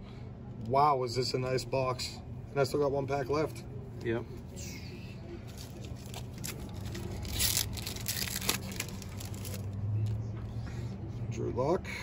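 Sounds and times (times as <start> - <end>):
foil wrapper crinkling: 5.5 - 9.7
foil wrapper ripping: 5.5 - 9.7.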